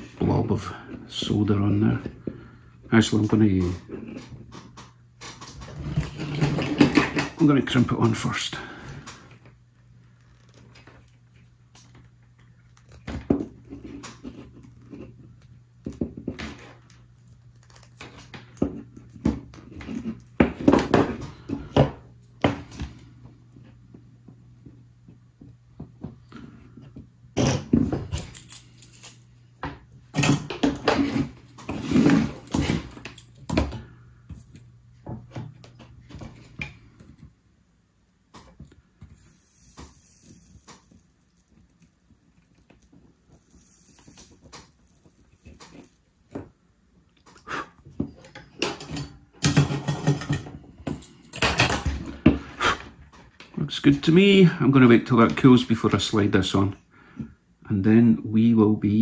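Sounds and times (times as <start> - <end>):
pliers and wire clicking: 28.1 - 29.2.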